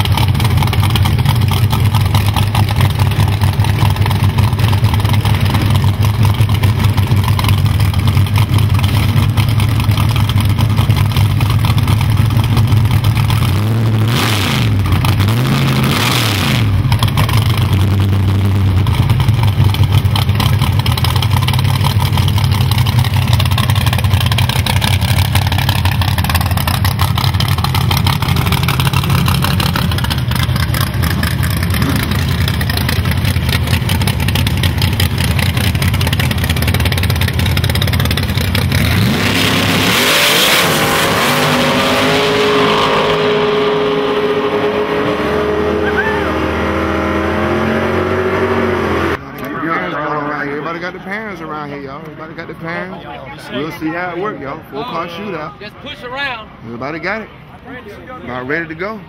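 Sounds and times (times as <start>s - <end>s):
drag-race car engine idling and revving: 0.0s - 54.0s.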